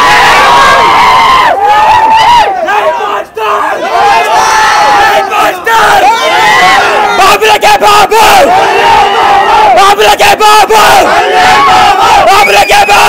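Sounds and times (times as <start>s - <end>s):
crowd of young men shouting: 0.0s - 13.0s.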